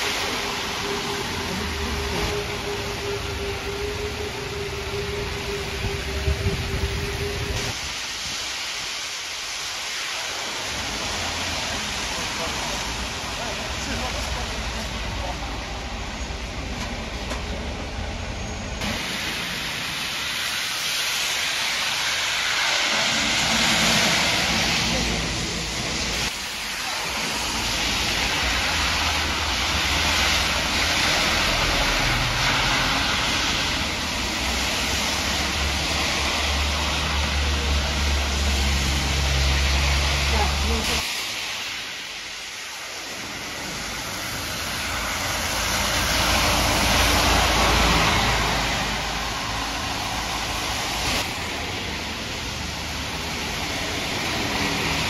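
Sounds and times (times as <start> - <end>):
vehicle engines rumbling: 0.0 - 7.8, 10.6 - 41.2, 43.1 - 55.0
rain: 0.0 - 55.0
tyres hissing on wet road: 0.0 - 55.0.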